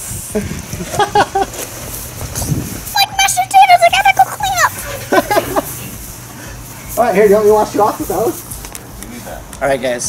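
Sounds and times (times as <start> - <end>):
girl yelping: 2.9 - 5.2
girl squealing: 3.0 - 5.1.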